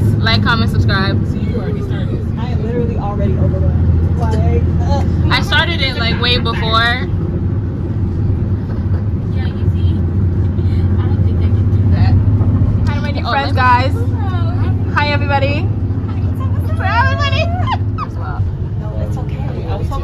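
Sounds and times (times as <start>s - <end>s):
bus engine and road noise: 0.0s - 20.0s
voices talking: 0.0s - 20.0s.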